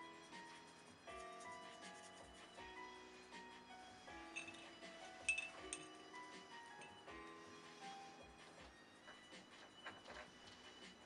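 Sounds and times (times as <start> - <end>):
soft background music: 0.0 - 11.0
paintbrush clinking against glass jar: 4.2 - 7.1.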